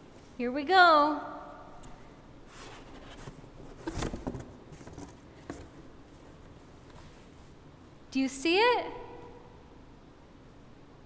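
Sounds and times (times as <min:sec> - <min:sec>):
cardboard scraping and rustling: 0:02.5 - 0:07.3.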